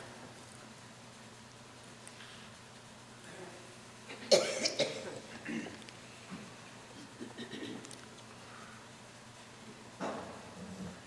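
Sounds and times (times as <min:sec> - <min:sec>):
person coughing: 0:04.1 - 0:05.8, 0:07.0 - 0:07.9.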